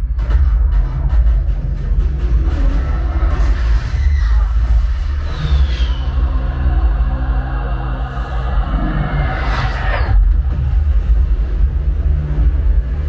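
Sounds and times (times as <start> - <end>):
action film music: 0.0 - 13.0
deep bass rumble: 0.0 - 13.0.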